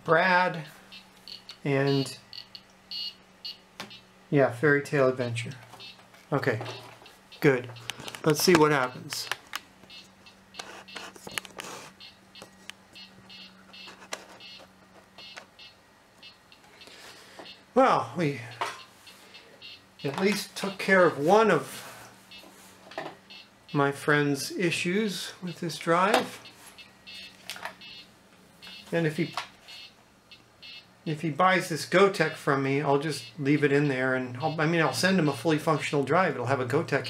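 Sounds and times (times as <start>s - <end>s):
steady low hum: 0.0s - 37.0s
disk drives stepping: 5.5s - 17.7s.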